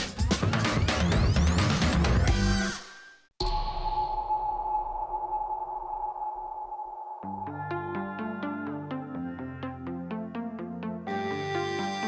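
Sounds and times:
sustained synthesizer tone: 3.4 - 9.2.

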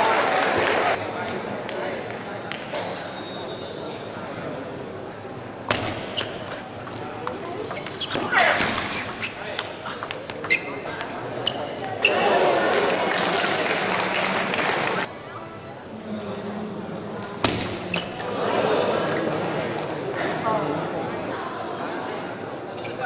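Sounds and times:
crowd applause: 0.0 - 1.0, 12.2 - 15.1.

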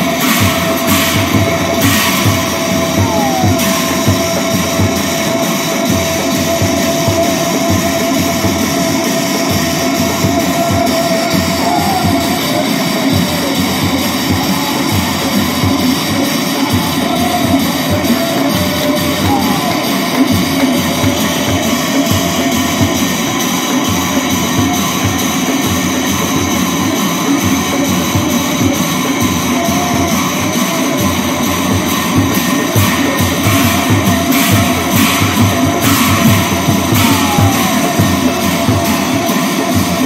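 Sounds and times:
steady held tone: 0.0 - 24.2
brass cymbals clashing: 0.0 - 40.0
large drums beating: 0.0 - 40.0.

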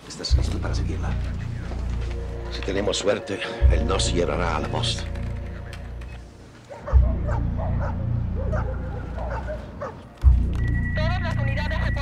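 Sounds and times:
low pulsing drone: 0.3 - 12.0
animal whining and yelping: 6.7 - 10.1.

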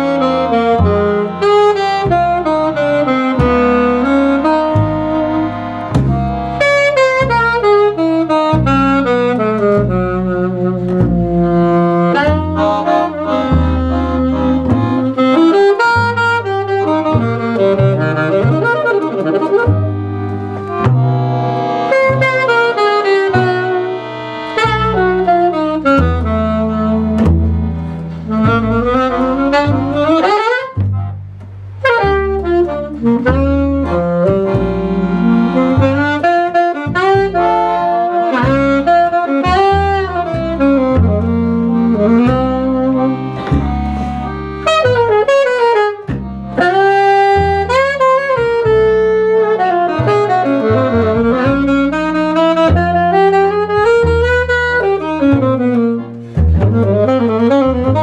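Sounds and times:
double bass: 0.0 - 58.0
saxophone swing jazz solo: 0.0 - 58.0.

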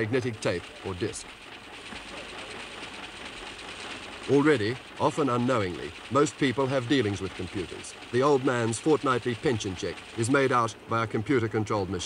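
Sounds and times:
line printer chatter: 0.0 - 12.0.

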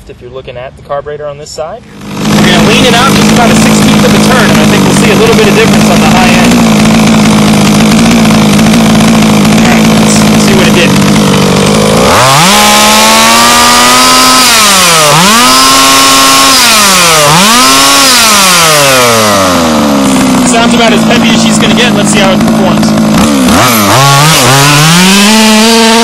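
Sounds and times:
two-stroke engine revving: 1.8 - 26.0.

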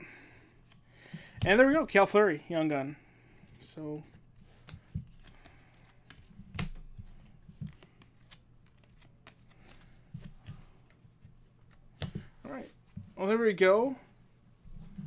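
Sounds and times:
trading cards sliding: 7.0 - 12.7.

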